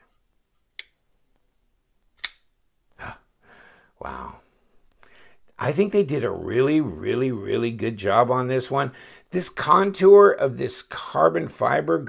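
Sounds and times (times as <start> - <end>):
folding knife blade snapping open: 2.2 - 2.5.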